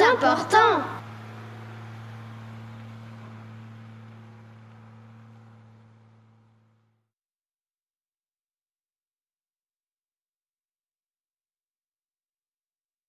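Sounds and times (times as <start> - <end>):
low electrical hum: 0.0 - 7.0.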